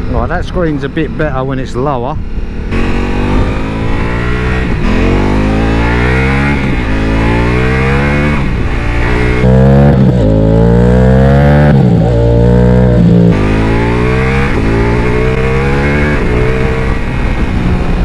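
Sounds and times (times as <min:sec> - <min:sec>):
motorcycle engine accelerating: 0:00.0 - 0:18.0.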